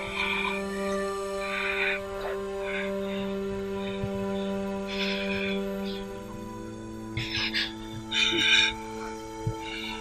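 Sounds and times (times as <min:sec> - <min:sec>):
sustained synthesizer chord: 0:00.0 - 0:10.0.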